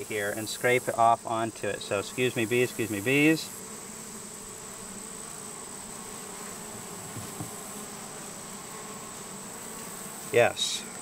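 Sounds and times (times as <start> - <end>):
honeybees buzzing: 0.0 - 11.0.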